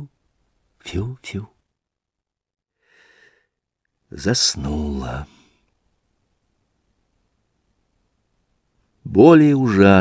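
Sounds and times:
faint short breath: 0:02.8 - 0:03.6.

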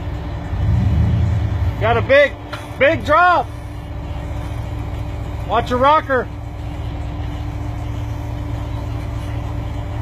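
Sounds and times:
buggy engine low rumble: 0:00.0 - 0:10.0.

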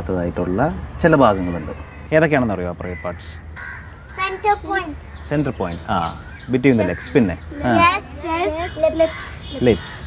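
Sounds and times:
man asking a question: 0:00.0 - 0:03.6, 0:04.7 - 0:08.2, 0:09.1 - 0:10.0.

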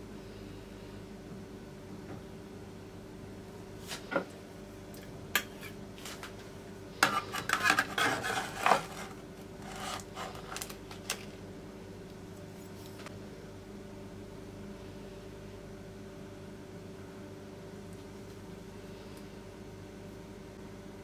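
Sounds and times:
faint steady hum: 0:00.0 - 0:21.0
cake server scraping metal tray: 0:07.0 - 0:10.6.

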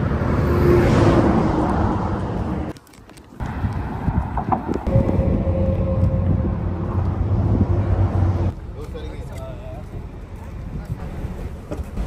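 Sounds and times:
road traffic noise: 0:00.0 - 0:12.0
wind buffeting microphone: 0:03.4 - 0:09.1.

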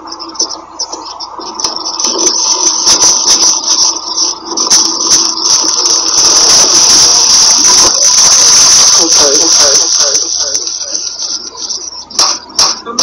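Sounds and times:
steady high hiss: 0:00.0 - 0:13.0.

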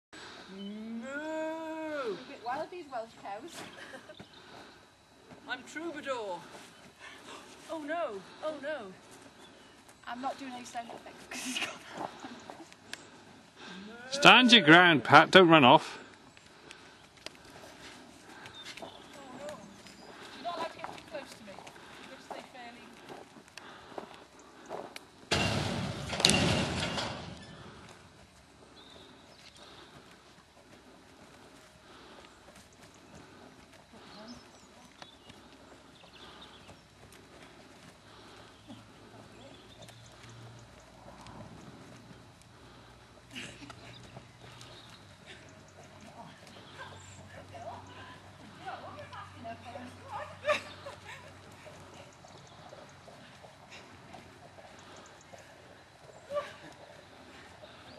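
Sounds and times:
faint hoofbeats: 0:00.2 - 0:57.9.

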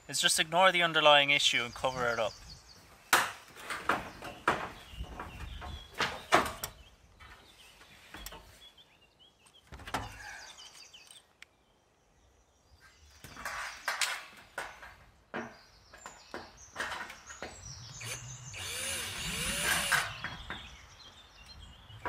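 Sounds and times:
cordless drill: 0:18.0 - 0:20.2.

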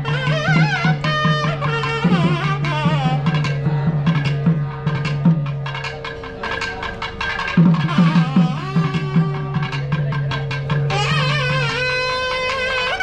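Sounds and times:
double-reed horn melody: 0:00.0 - 0:03.9, 0:07.6 - 0:13.0
fast drum strokes: 0:00.0 - 0:13.0.

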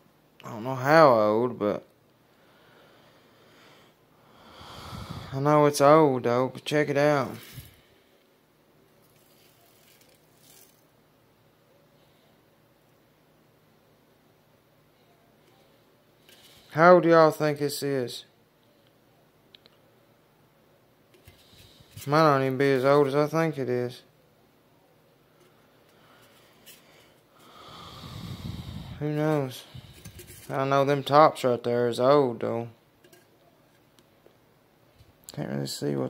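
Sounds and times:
man exhaling: 0:02.6 - 0:05.4, 0:27.4 - 0:29.0
faint rustle: 0:28.3 - 0:30.6.

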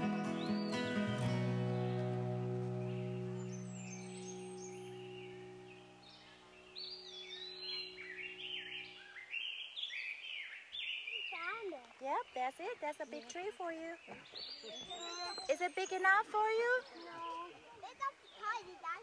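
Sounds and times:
background music sustained chord: 0:00.0 - 0:09.5
small birds chirping: 0:00.0 - 0:19.0.

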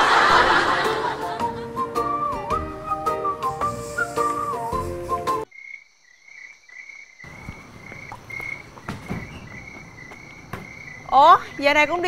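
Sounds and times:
background music: 0:00.0 - 0:05.5
crickets chirping: 0:03.4 - 0:12.0.

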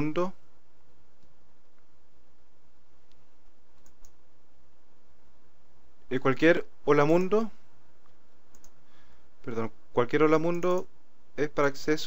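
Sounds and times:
computer mouse clicks: 0:03.8 - 0:04.2, 0:08.1 - 0:08.8.

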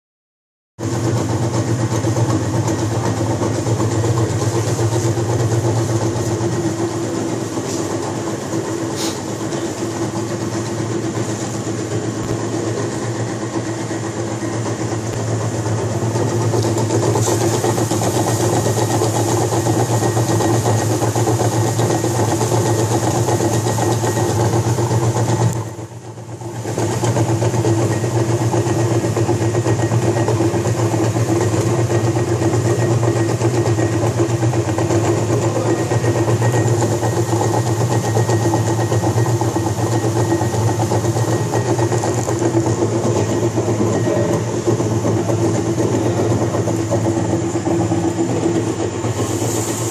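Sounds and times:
plastic granulator grinding: 0:00.8 - 0:49.9.

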